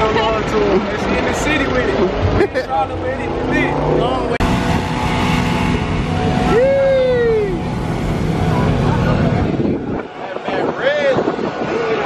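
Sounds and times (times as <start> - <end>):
low rumble of vehicle engines: 0.0 - 12.0.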